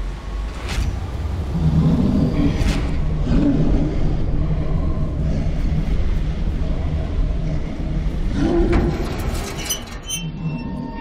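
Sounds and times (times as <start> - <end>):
loud low rumble: 0.0 - 9.4.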